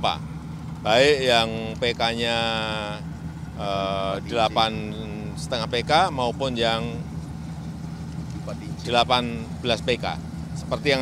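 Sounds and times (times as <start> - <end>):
water pump engine humming: 0.0 - 11.0.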